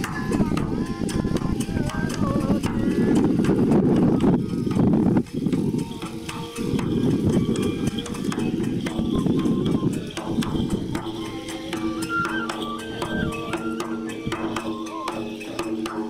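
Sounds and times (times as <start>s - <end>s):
faint flute: 0.0s - 16.0s
taiko drum beating fast: 0.0s - 16.0s.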